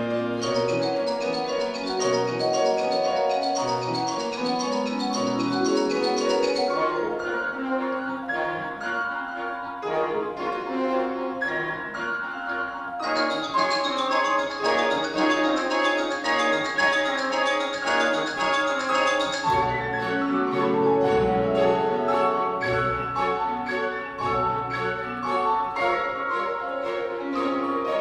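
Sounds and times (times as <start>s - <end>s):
piano concerto with orchestra: 0.0s - 28.0s.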